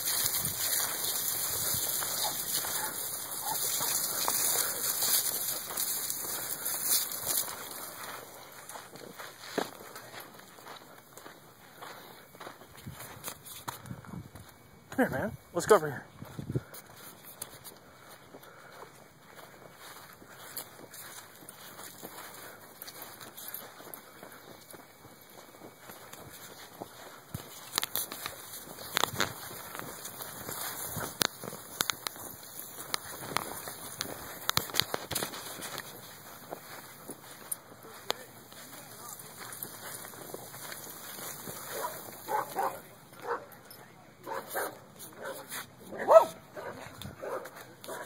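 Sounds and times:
outdoor background noise: 0.0 - 48.0.

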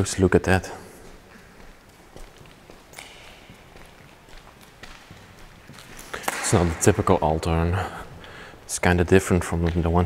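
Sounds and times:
footsteps on gritty floor: 0.9 - 7.4.

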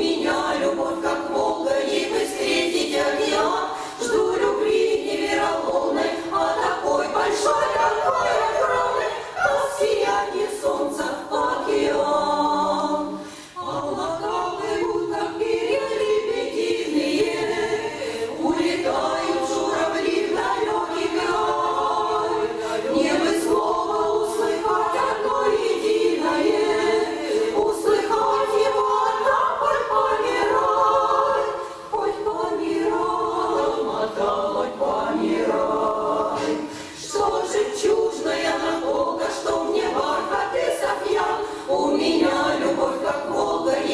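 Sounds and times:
women's vocal ensemble singing: 0.0 - 43.9.

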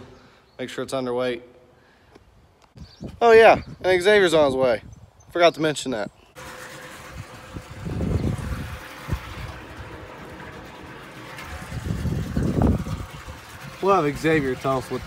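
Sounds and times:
engine idling: 6.4 - 15.0.

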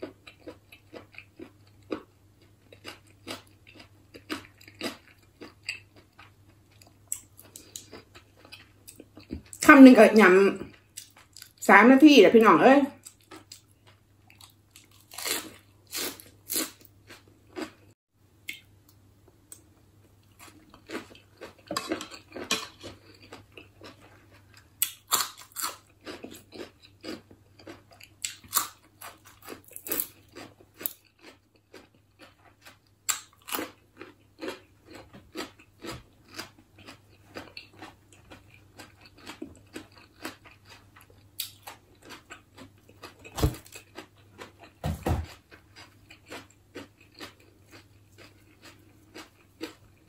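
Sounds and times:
person chewing crunchy food: 0.0 - 9.6, 10.7 - 11.6, 13.0 - 18.7, 19.5 - 50.0.

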